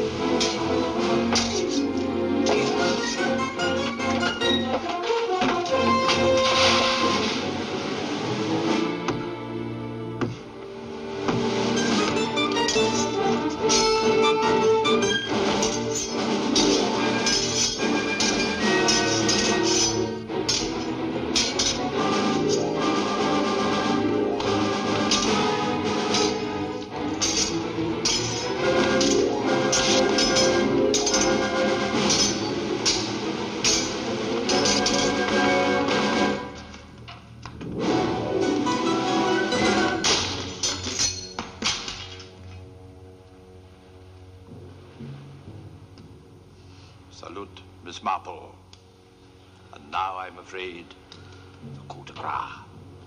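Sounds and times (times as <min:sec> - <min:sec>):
orchestral music with brass: 0:00.0 - 0:37.0, 0:37.6 - 0:47.0.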